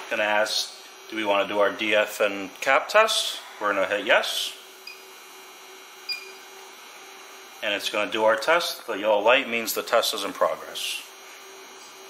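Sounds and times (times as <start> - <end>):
short high electronic beep: 6.1 - 6.4.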